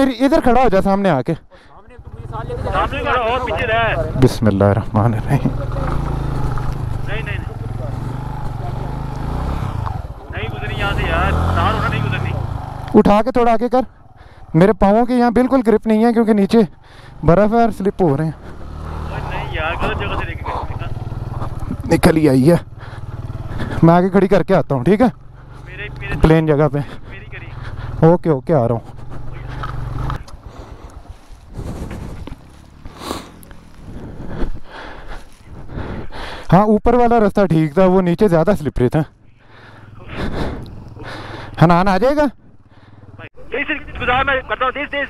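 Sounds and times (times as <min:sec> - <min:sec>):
motorcycle engine running at low revs: 0:03.8 - 0:13.3, 0:16.2 - 0:35.7.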